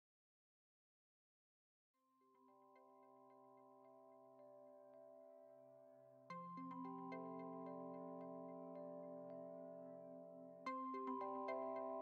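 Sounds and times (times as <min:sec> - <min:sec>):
soft synth background music: 0:02.3 - 0:12.0.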